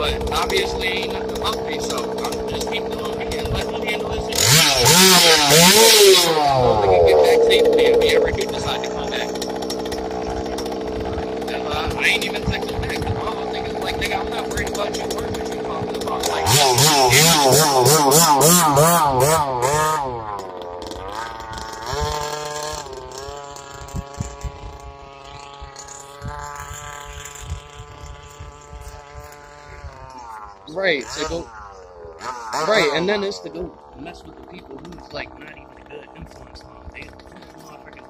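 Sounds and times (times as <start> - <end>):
small two-stroke engine revving: 0.0 - 38.0.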